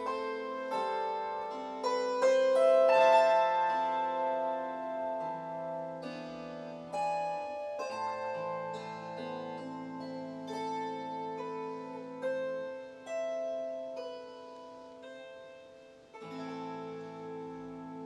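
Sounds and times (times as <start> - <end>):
plucked kantele melody: 0.0 - 18.0.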